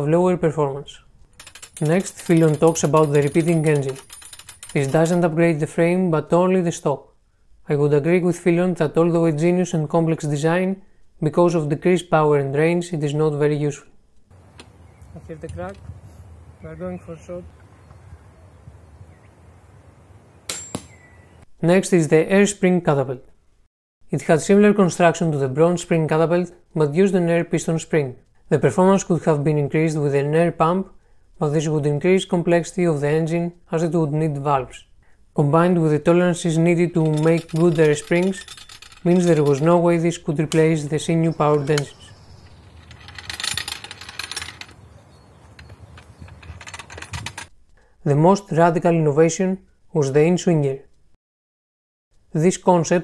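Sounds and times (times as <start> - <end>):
catapult mechanism clicking: 37.0 - 39.8, 41.5 - 44.8, 45.5 - 47.5.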